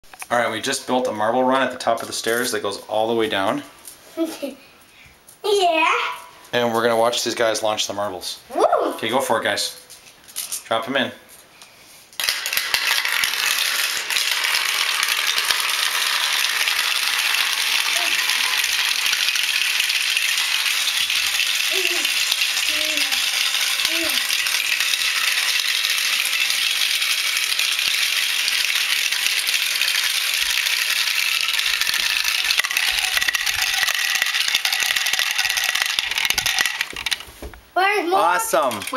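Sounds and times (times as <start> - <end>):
glass marbles rattling down plastic run: 12.2 - 37.4, 38.1 - 38.9.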